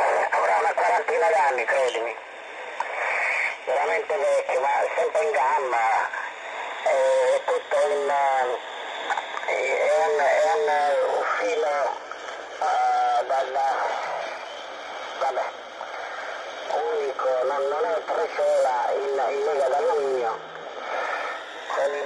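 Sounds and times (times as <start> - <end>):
person speaking over radio: 0.0 - 22.0
radio static hiss: 0.0 - 22.0.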